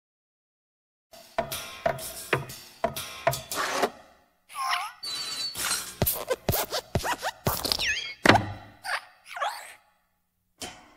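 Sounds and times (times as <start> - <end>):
squeaky creaks sliding in pitch: 4.7 - 8.2
springy cartoon thuds: 6.0 - 8.8.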